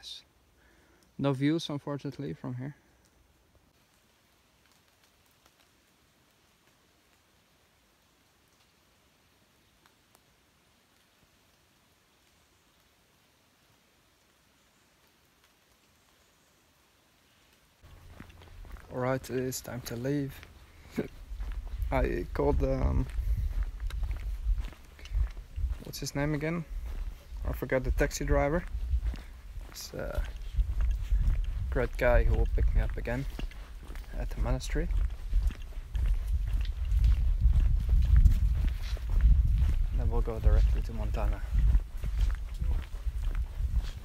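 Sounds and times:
soft footstep thumps: 17.8s - 44.0s
low microphone rumble: 17.9s - 44.0s.

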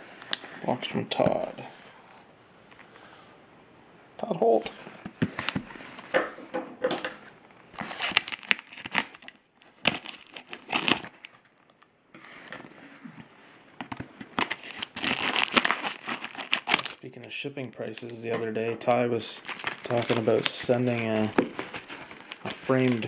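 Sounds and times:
paper envelope crinkling: 7.7s - 11.9s, 14.4s - 18.3s, 19.1s - 23.0s.

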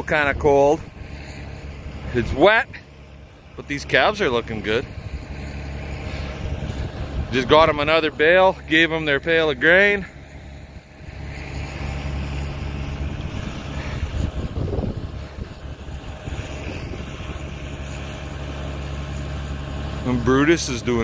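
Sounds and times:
engine idling: 0.0s - 21.0s
wind: 0.0s - 21.0s.

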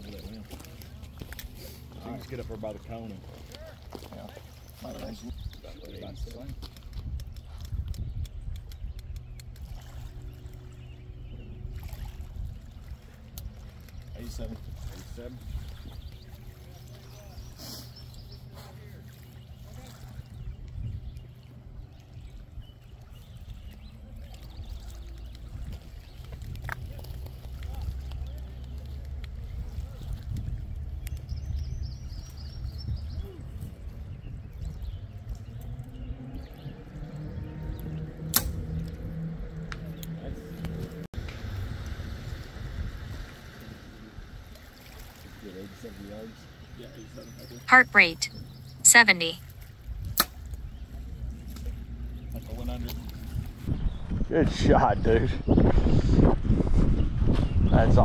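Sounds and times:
wind rumble on microphone: 5.0s - 17.4s, 19.4s - 45.6s, 49.5s - 58.0s.

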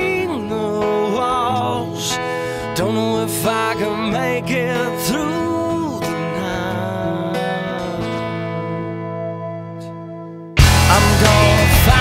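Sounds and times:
rock guitar chords: 0.0s - 12.0s.

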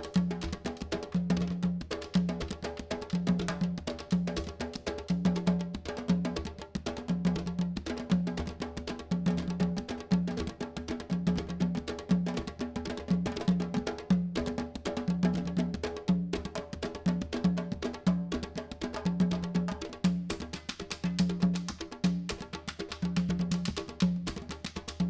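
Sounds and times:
hand and stick drumming: 0.0s - 25.0s.

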